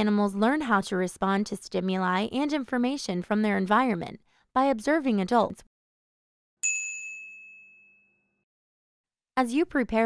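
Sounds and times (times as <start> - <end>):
bright chime: 6.6 - 8.3.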